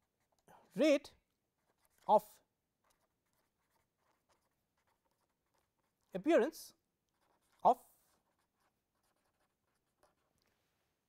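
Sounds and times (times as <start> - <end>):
marker pen scratching on paper: 0.0 - 11.0.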